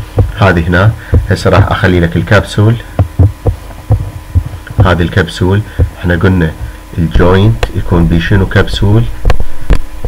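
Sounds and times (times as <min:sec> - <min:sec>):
soft low thumps: 0:00.0 - 0:10.0
man speaking: 0:00.3 - 0:03.0, 0:04.7 - 0:09.2.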